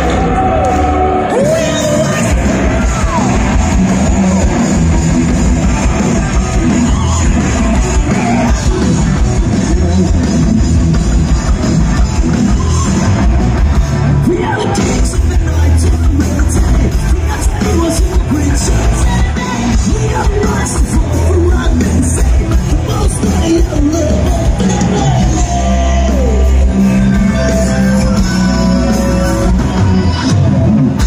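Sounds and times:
singer's vocals and yells: 0.0 - 10.6, 11.6 - 31.0
live rock band: 0.0 - 31.0.

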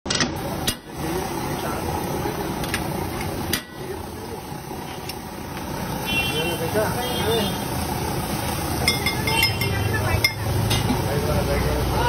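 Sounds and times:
street noise: 0.0 - 12.0
traffic: 0.1 - 12.0.

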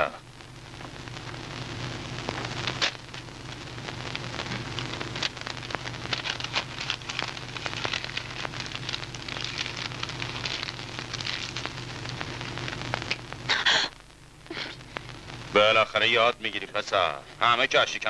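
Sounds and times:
film soundtrack crackle and hiss: 0.0 - 18.0.

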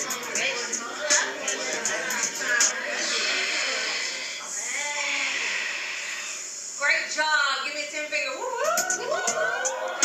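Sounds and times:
recording noise: 0.0 - 10.0
voices in a classroom: 0.0 - 10.0.

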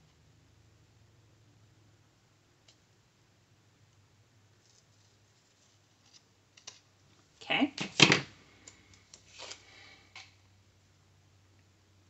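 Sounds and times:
paper rustling: 4.6 - 6.9.

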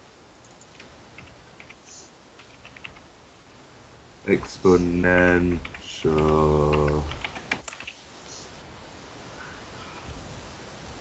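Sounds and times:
faint steady hiss: 0.0 - 11.0
keyboard key clicks: 5.6 - 8.0.

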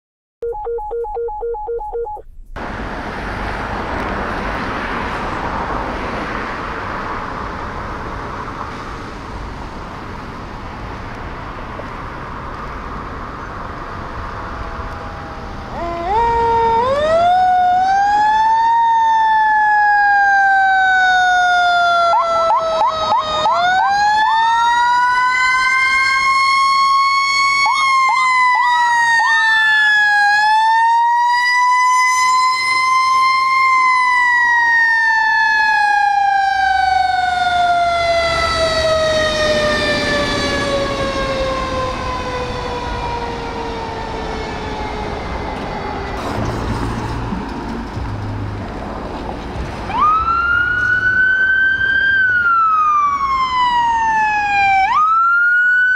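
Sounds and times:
truck engine rumble: 2.2 - 30.6, 31.2 - 55.8
fire truck siren wailing: 13.7 - 48.1, 49.7 - 55.9
siren whoops: 14.5 - 46.2, 49.9 - 55.9.

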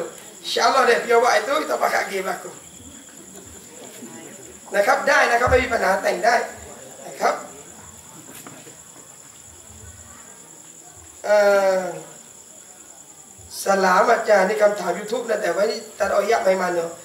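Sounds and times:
man speaking: 0.0 - 2.6, 4.7 - 7.6
crickets trilling: 0.0 - 17.0.

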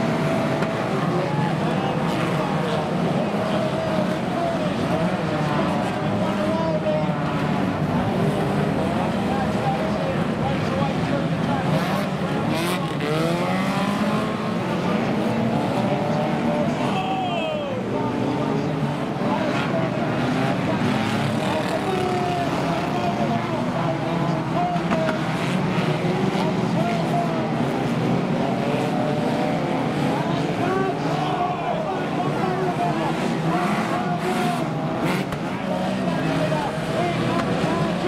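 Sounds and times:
racing car engines revving: 0.0 - 38.0.

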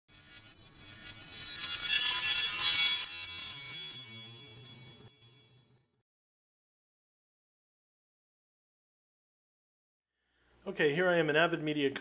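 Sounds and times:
bright shimmering swell: 0.1 - 6.0
low held tone: 0.1 - 6.0.

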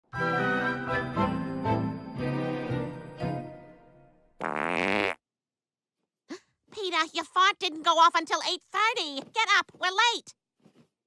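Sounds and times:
cartoon fart sound effect: 4.4 - 5.2.

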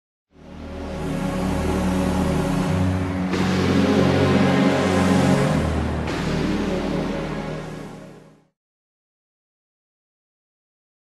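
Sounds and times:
synthesizer pad chords: 0.3 - 8.6
low bass line: 0.4 - 8.5
bright airy synth layer: 0.4 - 8.6.

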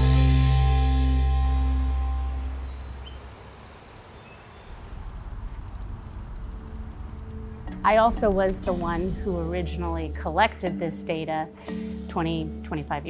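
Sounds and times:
fine high ticking: 4.1 - 8.7
soft background music: 6.3 - 13.0
woman speaking: 7.8 - 11.5, 12.1 - 13.0.

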